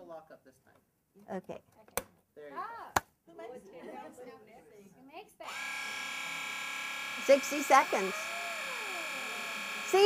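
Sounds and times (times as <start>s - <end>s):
blade sharpener motor buzzing: 5.4s - 10.0s.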